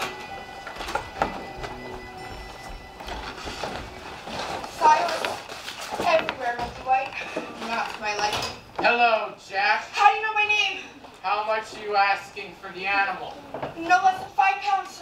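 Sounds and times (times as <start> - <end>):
theatre music with held notes: 0.0 - 5.6.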